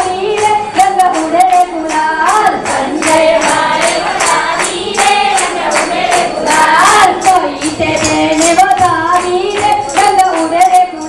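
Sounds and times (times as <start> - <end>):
group singing devotional song: 0.0 - 11.0
jingling hand percussion: 0.0 - 11.0.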